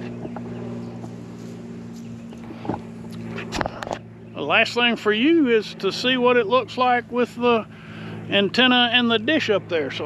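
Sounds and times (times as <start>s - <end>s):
low mechanical hum: 0.0s - 10.0s
camera handling knocks and rustles: 2.4s - 4.0s.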